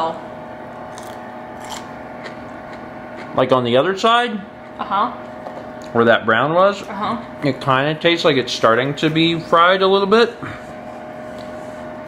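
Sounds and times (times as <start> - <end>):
steady low room hum: 0.0 - 12.0
person chewing crunchy food: 0.7 - 3.5.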